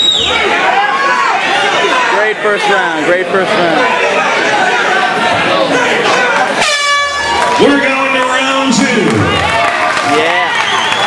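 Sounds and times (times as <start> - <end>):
crowd shouting: 0.0 - 11.0
air horn blowing: 6.6 - 7.3.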